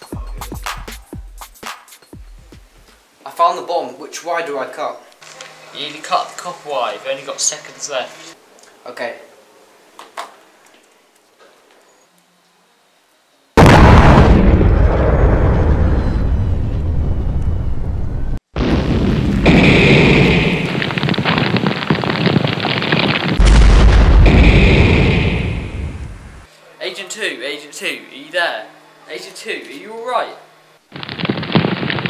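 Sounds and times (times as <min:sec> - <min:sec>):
crackling debris and fire: 0:13.6 - 0:17.4, 0:18.5 - 0:26.5, 0:30.9 - 0:32.0
explosion blast rumbling: 0:13.6 - 0:26.5, 0:31.0 - 0:32.0.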